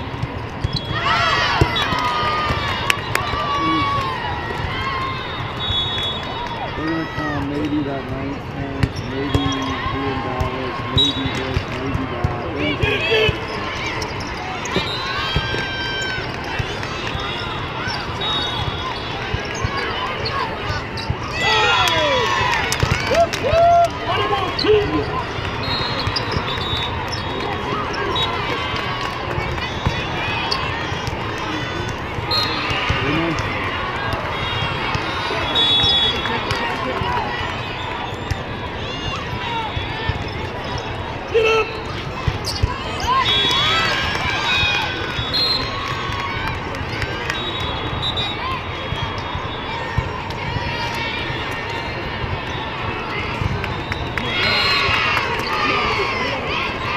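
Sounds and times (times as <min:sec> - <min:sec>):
hubbub of voices: 0:00.0 - 0:56.9
people shouting: 0:00.9 - 0:05.3, 0:14.6 - 0:25.1.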